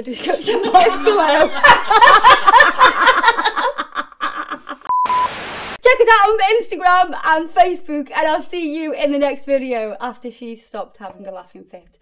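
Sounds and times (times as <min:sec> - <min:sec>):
soft laughter: 0:00.5 - 0:04.9
short electronic beep: 0:04.9 - 0:05.4.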